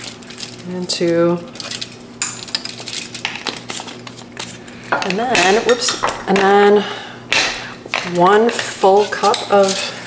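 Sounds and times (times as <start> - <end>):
fork scraping baking sheet: 8.0 - 10.0.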